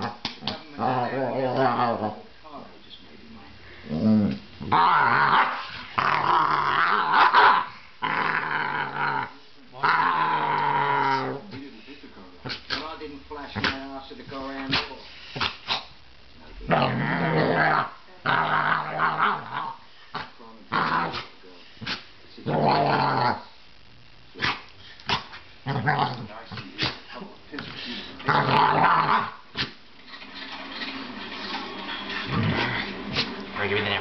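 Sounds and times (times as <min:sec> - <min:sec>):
dog growling: 0:00.0 - 0:02.3, 0:03.8 - 0:11.6, 0:16.5 - 0:23.6, 0:24.4 - 0:27.0, 0:28.0 - 0:29.8, 0:32.2 - 0:34.0.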